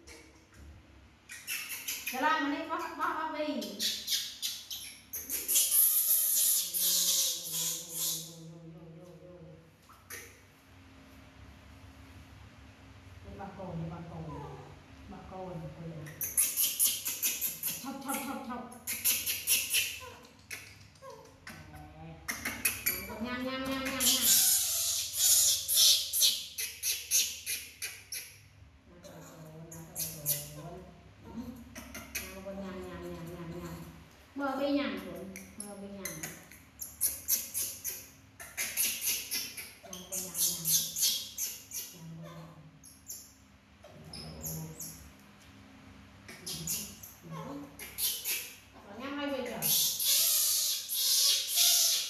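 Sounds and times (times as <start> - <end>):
baby monkeys squeaking: 1.3 - 8.4, 16.1 - 28.4, 29.7 - 30.6, 36.1 - 45.0, 46.3 - 48.6, 49.4 - 52.0
monkeys sucking milk bottles: 4.8 - 8.4, 16.2 - 21.7, 49.7 - 52.0.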